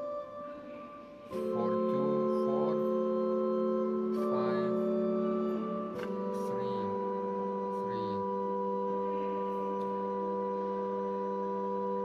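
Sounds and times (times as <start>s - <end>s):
pipe organ sustained chord: 0.0s - 12.0s.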